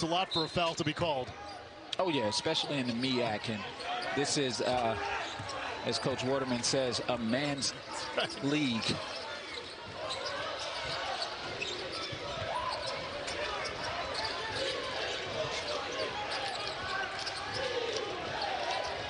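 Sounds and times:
arena crowd murmur: 0.0s - 19.0s
players' voices: 0.0s - 19.0s.

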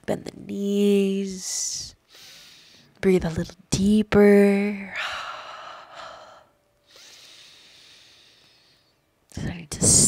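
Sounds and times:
woman breathing deeply: 2.0s - 3.0s, 5.0s - 9.2s.

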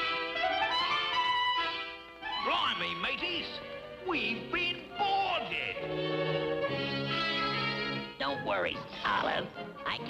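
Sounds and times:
cartoon orchestral underscore: 0.0s - 10.0s.

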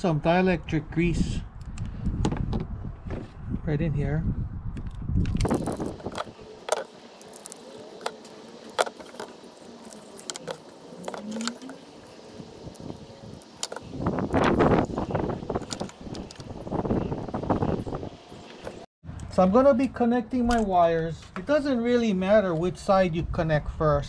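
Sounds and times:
rustling and rattling of wires: 5.2s - 17.7s.

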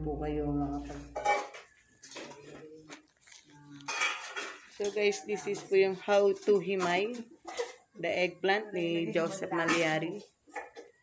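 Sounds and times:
fork clinking on a plate: 3.8s - 5.2s.

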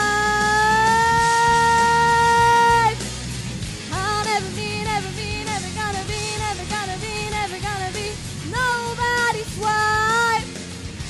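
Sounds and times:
backing track music: 0.0s - 11.0s.

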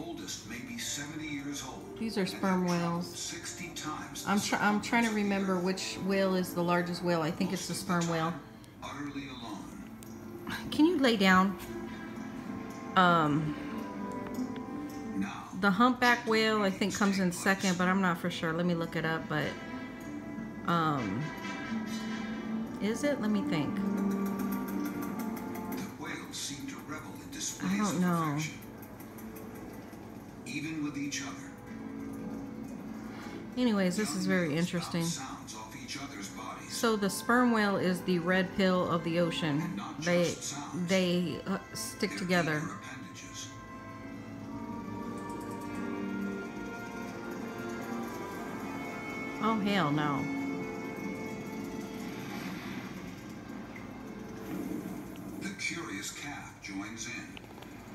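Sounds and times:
documentary music from television: 0.0s - 57.9s.

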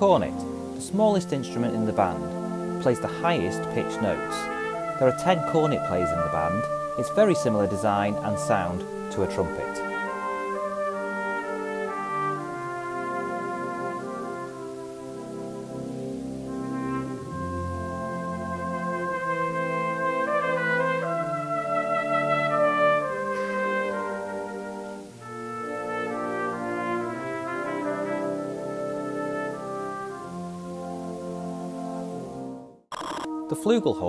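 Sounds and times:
brass band chords: 0.0s - 34.0s
cornet solo melody: 0.0s - 34.0s.

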